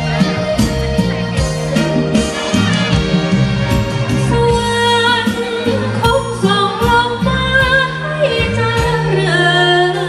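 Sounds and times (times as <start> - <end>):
instrumental accompaniment: 0.0 - 10.0
woman singing with vibrato: 4.2 - 10.0.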